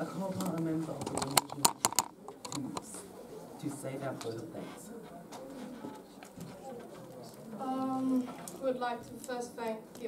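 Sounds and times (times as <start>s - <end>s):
low murmuring voices: 0.0s - 10.0s.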